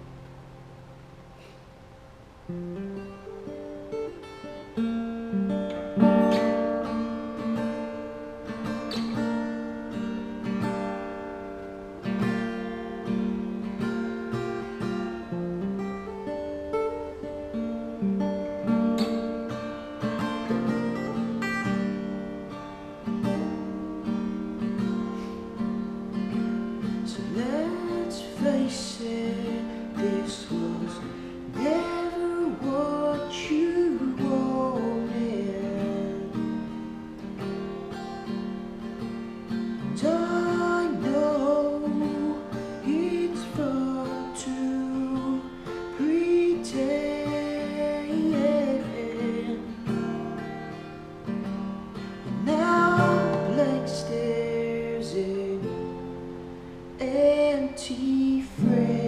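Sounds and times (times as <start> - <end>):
acoustic guitar chords: 0.0 - 59.0
man singing: 26.8 - 36.8, 39.8 - 50.6, 52.2 - 56.2, 57.0 - 59.0.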